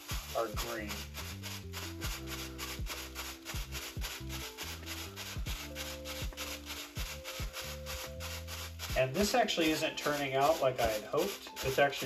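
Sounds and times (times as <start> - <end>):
beat music with bass and drums: 0.0 - 12.0
plastic bag rubbing on wet paint: 0.0 - 12.0.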